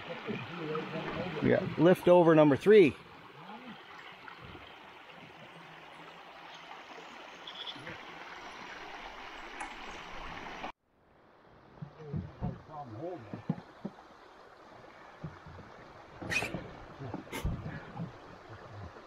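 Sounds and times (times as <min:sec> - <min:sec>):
flowing water: 0:00.0 - 0:19.0.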